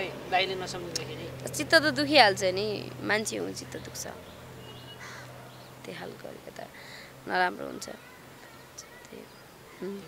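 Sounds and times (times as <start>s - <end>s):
crow cawing: 4.6s - 5.4s.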